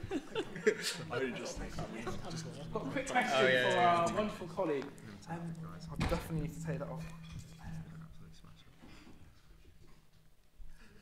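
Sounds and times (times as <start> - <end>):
faint indistinct voices: 0.0 - 9.7
steady low hum: 0.0 - 11.0.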